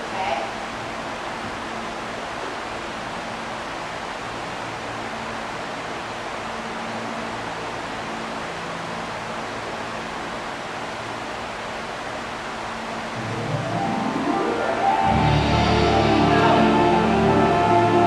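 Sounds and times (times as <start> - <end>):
room noise hiss: 0.0 - 18.0
ventilation fan hum: 0.0 - 18.0.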